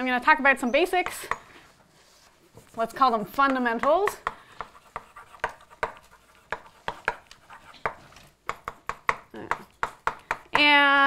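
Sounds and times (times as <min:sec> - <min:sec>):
chalk writing on a blackboard: 0:00.9 - 0:09.2.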